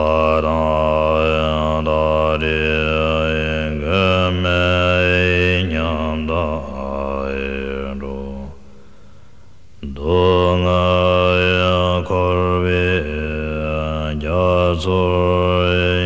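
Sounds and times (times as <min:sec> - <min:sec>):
deep male voice chanting: 0:00.0 - 0:08.7, 0:09.8 - 0:16.0.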